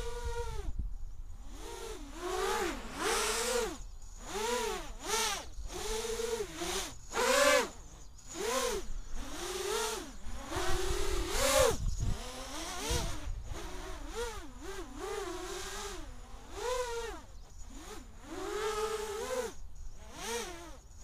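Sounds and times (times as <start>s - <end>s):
drone motors whining: 0.0s - 21.0s.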